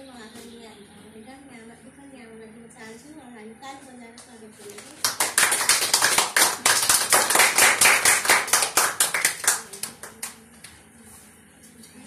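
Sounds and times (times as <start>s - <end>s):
people clapping: 4.8s - 10.8s.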